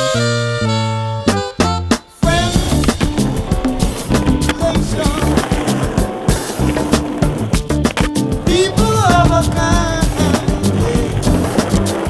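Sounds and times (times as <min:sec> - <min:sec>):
music: 0:00.0 - 0:12.0
skateboard clacking on stone ledge: 0:02.2 - 0:12.0
skateboard wheels rolling on stone: 0:02.2 - 0:12.0.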